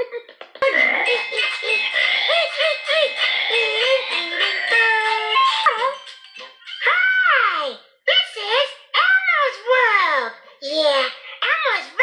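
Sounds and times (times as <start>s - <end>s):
bright children's music: 0.6s - 7.8s
squeaky puppet-like voice: 0.6s - 7.8s.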